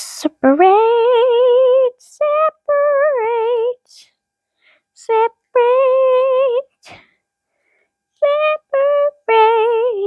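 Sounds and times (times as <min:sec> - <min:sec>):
child singing: 0:00.0 - 0:04.0, 0:05.0 - 0:07.0, 0:08.2 - 0:10.0.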